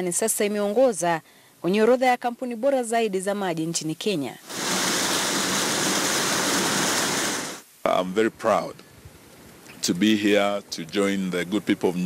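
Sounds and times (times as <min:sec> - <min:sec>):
water rushing through concrete channel: 0:04.5 - 0:07.6.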